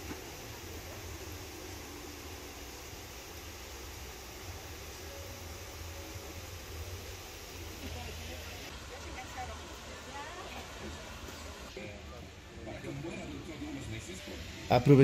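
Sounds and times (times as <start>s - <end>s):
low rumble and hiss: 0.0s - 15.0s.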